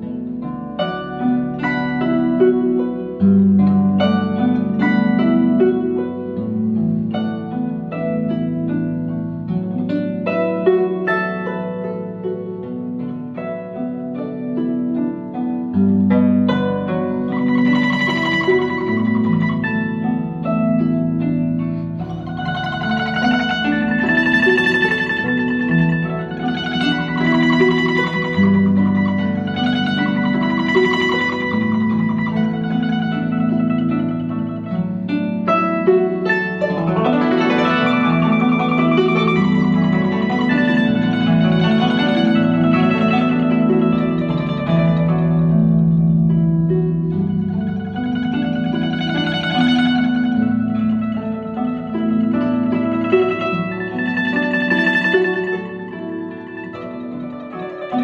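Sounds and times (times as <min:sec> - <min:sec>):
plucked zither melody: 0:00.0 - 0:58.0.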